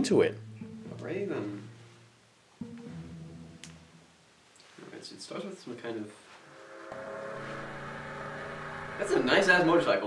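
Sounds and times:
motorcycle engine running: 6.8 - 10.0.

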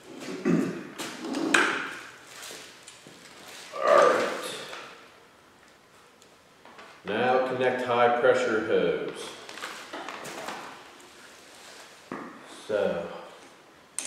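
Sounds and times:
plastic packaging rustling: 2.2 - 4.8, 9.3 - 12.1
man speaking: 3.7 - 4.8, 7.1 - 9.4, 12.5 - 13.4.

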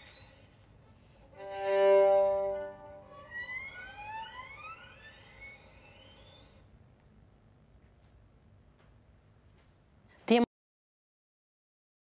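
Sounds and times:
violin high glissandi: 1.4 - 4.6.

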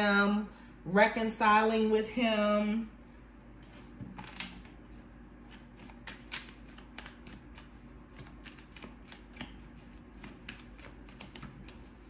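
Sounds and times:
cards being shuffled: 3.6 - 12.0.

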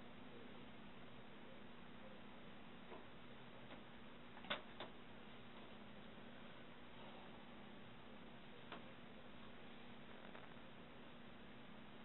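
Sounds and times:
faint room hum: 0.0 - 12.0.

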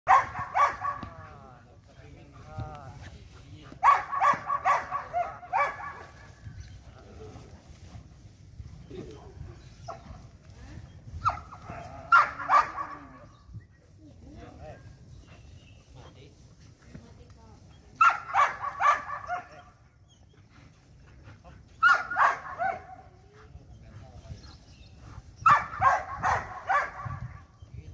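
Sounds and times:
dog barking: 0.1 - 1.2, 3.8 - 6.3, 12.1 - 13.2, 18.0 - 19.7, 21.8 - 23.0, 25.4 - 27.4.

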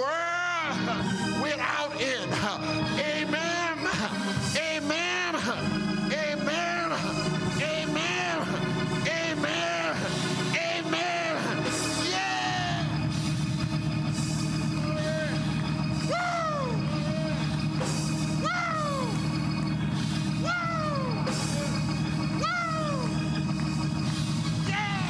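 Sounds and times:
church organ chord: 0.0 - 25.0
organ pitch slide: 0.0 - 25.0.

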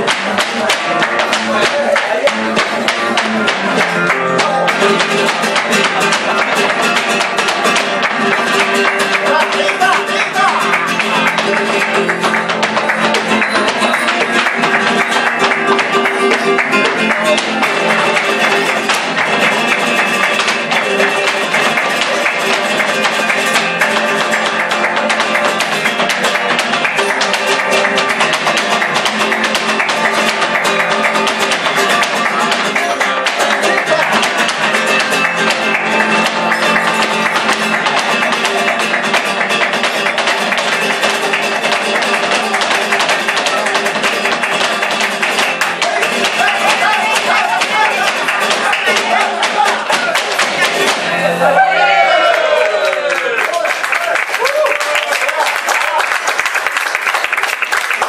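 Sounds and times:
hand-clapping: 0.0 - 51.2, 52.2 - 58.0
flamenco guitar playing: 0.0 - 58.0.

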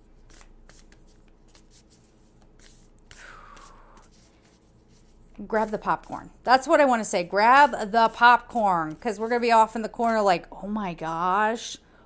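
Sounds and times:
cards being shuffled: 0.2 - 6.2, 7.2 - 10.3.

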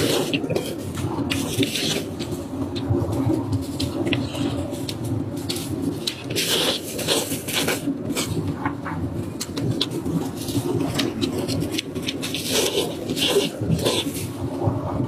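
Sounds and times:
wet chewing and slurping: 0.0 - 8.6, 9.2 - 14.4
low background hum: 0.0 - 15.0.

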